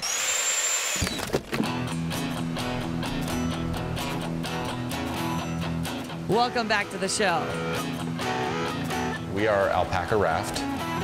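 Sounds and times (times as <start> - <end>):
hissing drill-like whir: 0.0 - 1.3
guitar music: 1.6 - 11.0.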